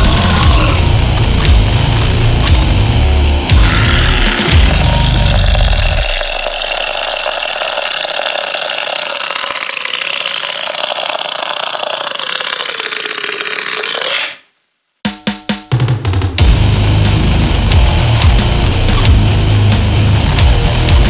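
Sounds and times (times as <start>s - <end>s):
heavily distorted band: 0.0s - 6.5s, 15.1s - 21.0s.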